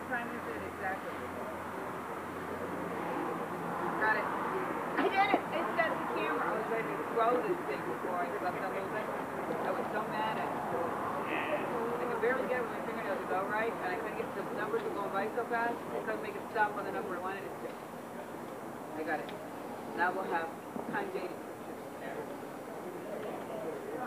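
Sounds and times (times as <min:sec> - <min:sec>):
indistinct chatter of people: 0:00.0 - 0:24.0.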